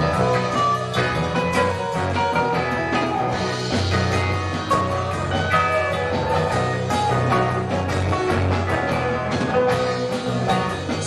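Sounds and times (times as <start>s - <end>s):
drum kit beat: 0.0s - 11.0s
electric guitars: 0.0s - 11.0s
keyboard: 0.0s - 11.0s.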